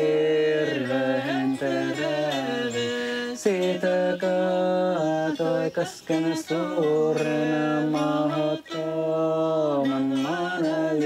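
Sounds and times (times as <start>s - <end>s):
person singing chant-like note: 0.0s - 11.0s.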